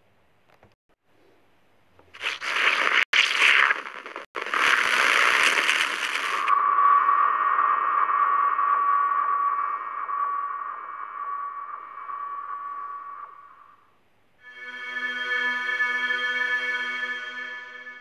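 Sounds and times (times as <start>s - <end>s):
noisy rushing swoosh: 6.4s - 13.8s
held synth tone: 6.4s - 18.0s
music: 14.4s - 18.0s.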